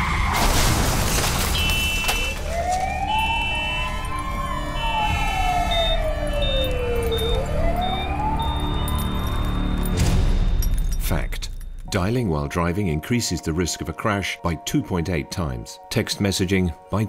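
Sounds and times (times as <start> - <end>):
siren wailing: 1.6 - 9.8.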